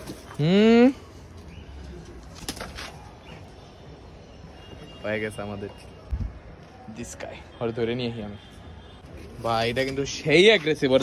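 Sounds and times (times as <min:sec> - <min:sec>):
faint birds: 0:00.4 - 0:06.2.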